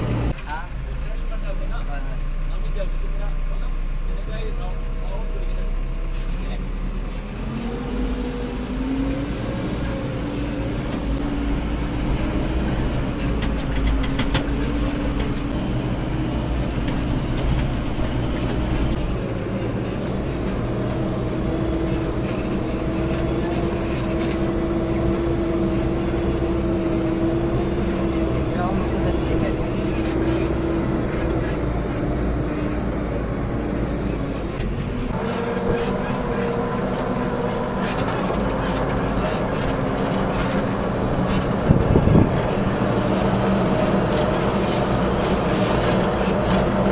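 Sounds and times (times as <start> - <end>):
diesel engine revving: 0.0 - 46.9.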